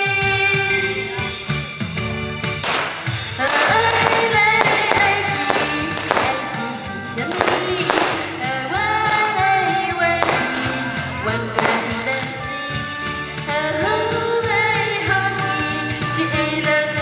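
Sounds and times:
amplified backing music with beat: 0.0 - 17.0
woman singing into microphone: 3.4 - 12.6, 13.5 - 17.0.

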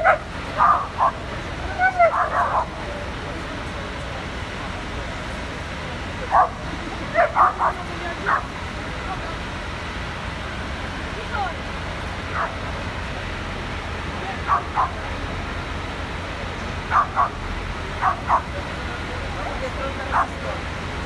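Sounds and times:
dog barking: 0.0 - 1.2, 2.0 - 2.8, 6.3 - 6.6, 7.2 - 8.5, 12.3 - 12.6, 14.4 - 15.0, 16.9 - 17.4, 18.0 - 18.5
fire engines rumbling: 0.0 - 21.0.

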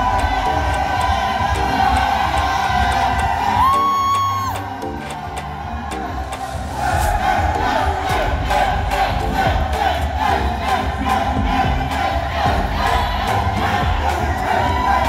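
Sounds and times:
crowd cheering and shouting: 0.0 - 15.0
music with steady beat: 0.0 - 15.0.

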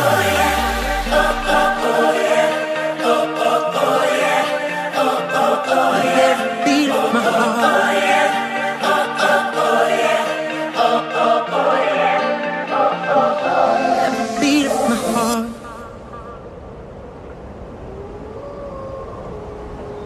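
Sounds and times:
pop backing music: 0.0 - 15.9
choir-like vocals chanting: 0.0 - 16.0.

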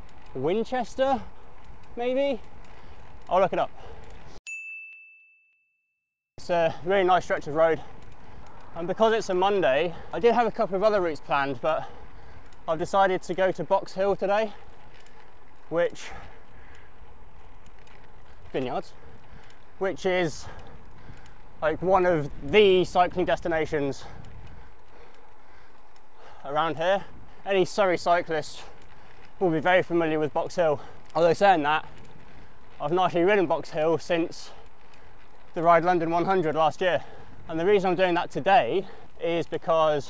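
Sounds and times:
bike tyre noise: 0.0 - 4.4, 6.4 - 40.0
road and wind noise: 0.0 - 4.4, 6.5 - 40.0
faint clicks: 1.1 - 4.4, 11.8 - 12.9, 14.5 - 19.8, 24.1 - 26.4
bright bell-like ding: 4.5 - 5.8.

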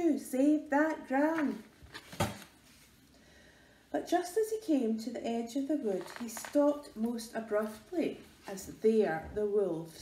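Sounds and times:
book page turning: 1.4 - 3.0, 6.0 - 6.7.

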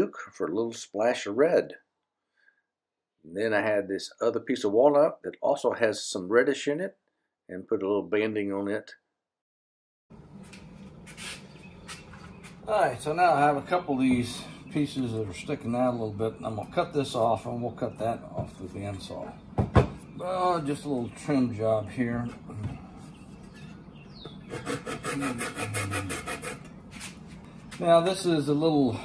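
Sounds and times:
steady low hum: 10.1 - 29.0
hand saw cutting wood: 24.5 - 26.7.

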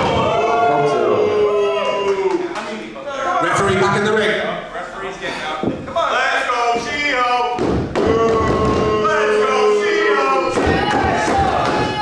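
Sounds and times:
people shouting: 0.0 - 2.5, 7.9 - 12.0.

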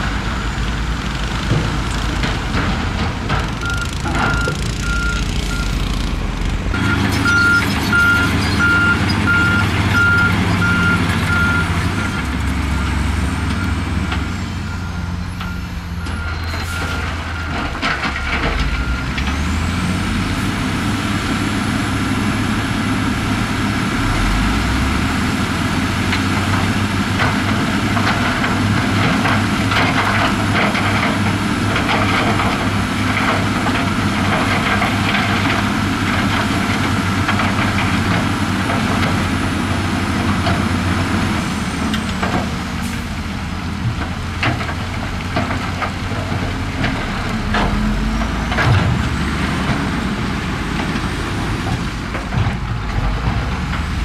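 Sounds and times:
diesel construction machines running: 0.0 - 54.0
reversing alarm beeping: 3.6 - 6.0, 6.8 - 13.9, 14.5 - 17.6.

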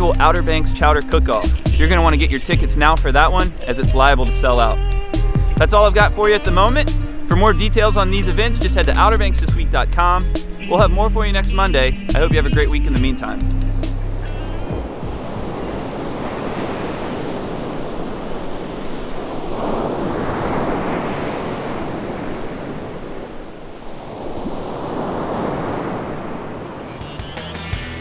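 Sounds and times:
ocean surf breaking on beach: 3.1 - 4.7, 13.2 - 27.2.

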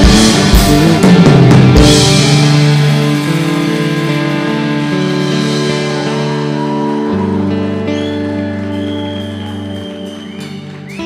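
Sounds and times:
rock band sustained chord: 0.0 - 10.7.

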